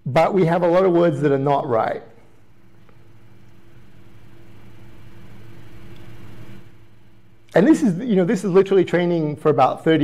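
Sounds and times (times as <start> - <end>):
low hum with faint hiss: 0.0 - 10.0.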